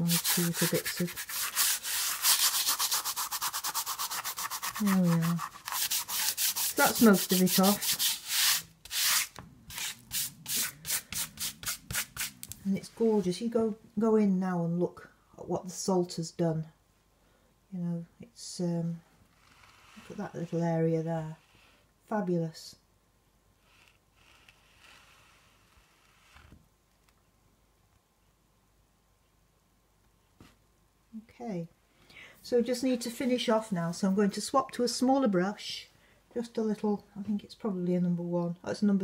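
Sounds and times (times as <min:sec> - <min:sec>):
hand rubbing dry paper: 0:00.0 - 0:12.5
faint soft noises: 0:17.7 - 0:22.8, 0:23.5 - 0:28.4.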